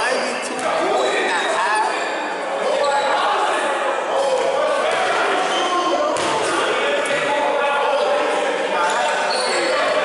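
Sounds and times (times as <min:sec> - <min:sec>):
players shouting and chatting: 0:00.0 - 0:10.0.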